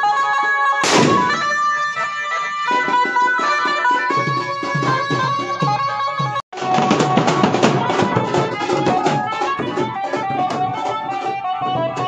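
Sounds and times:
reedy keyboard melody: 0.0s - 12.0s
steady drum beat: 0.8s - 12.0s.

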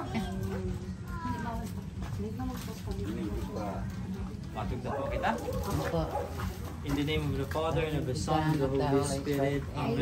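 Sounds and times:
quiet adult voices: 0.0s - 10.0s.

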